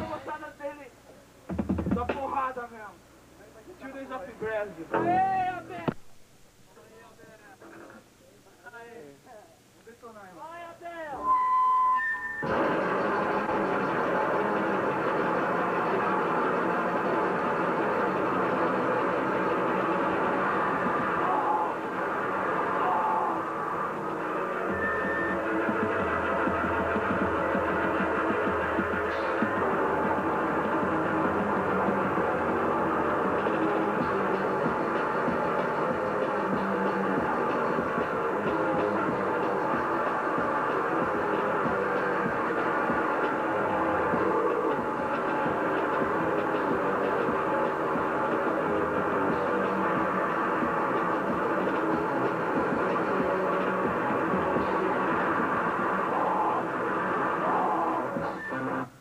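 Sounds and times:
noisecore band playing: 11.2 - 58.5.

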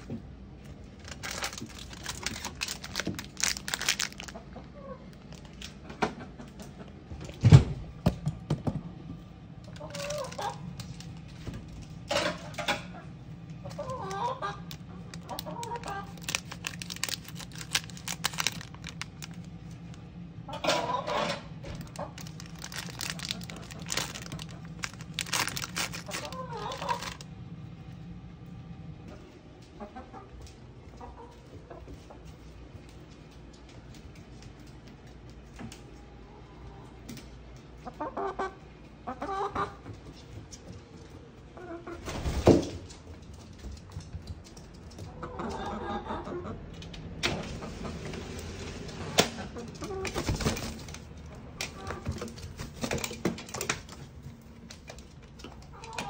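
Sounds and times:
plastic packet crinkling: 0.9 - 4.4, 9.7 - 11.4, 13.8 - 20.0, 21.7 - 27.3
chicken calling: 1.3 - 5.3, 9.7 - 10.8, 12.2 - 19.0, 20.5 - 27.2, 37.8 - 39.9, 45.1 - 46.6.

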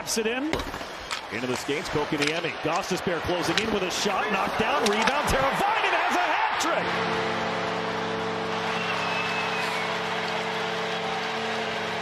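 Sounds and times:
crowd cheering: 1.7 - 12.0
goal horn chord: 6.8 - 12.0.

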